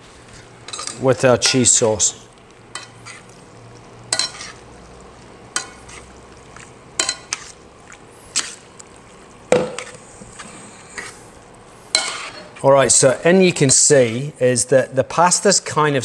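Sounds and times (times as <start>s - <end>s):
wet stirring of pasta: 0.1s - 14.3s
tongs clinking against pan: 2.7s - 3.0s, 4.1s - 4.5s, 5.5s - 5.9s, 7.0s - 7.4s, 11.9s - 12.4s.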